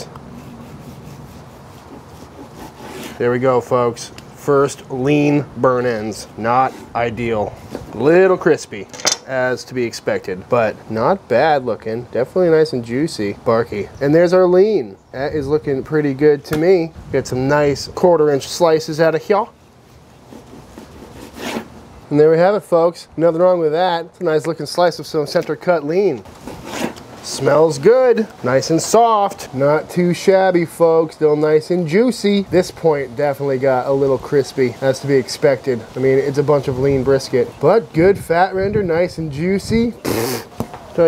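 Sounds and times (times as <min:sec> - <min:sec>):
blade scraping wooden board: 0:00.4 - 0:03.2, 0:20.3 - 0:21.7, 0:26.4 - 0:27.0
knife sawing through meat crust: 0:00.4 - 0:03.2, 0:20.3 - 0:21.7.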